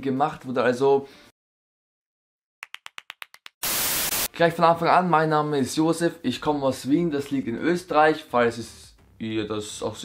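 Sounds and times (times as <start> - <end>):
tv static hiss: 3.6 - 4.3.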